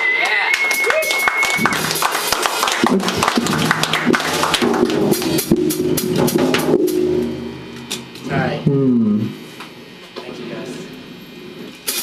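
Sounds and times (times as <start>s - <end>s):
drum kit with cymbal crashes: 0.0s - 10.1s, 11.2s - 12.0s
electric guitars: 0.0s - 12.0s.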